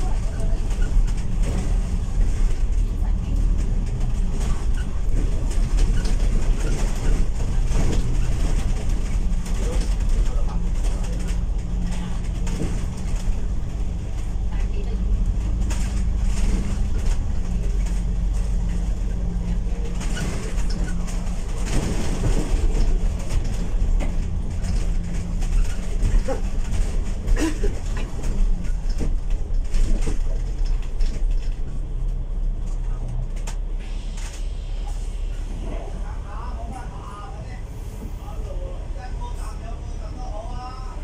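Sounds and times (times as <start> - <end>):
bodywork rattles and squeaks: 0.0 - 33.5
bus diesel engine running: 0.0 - 41.0.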